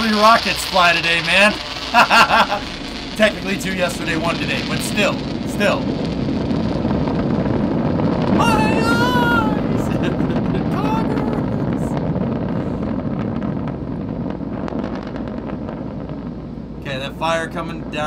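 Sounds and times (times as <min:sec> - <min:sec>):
rocket engine roar: 0:00.0 - 0:18.0.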